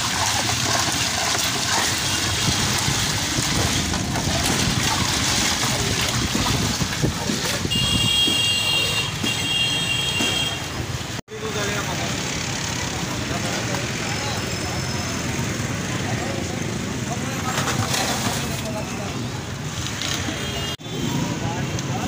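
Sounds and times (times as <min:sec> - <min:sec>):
traffic noise: 0:00.0 - 0:22.0.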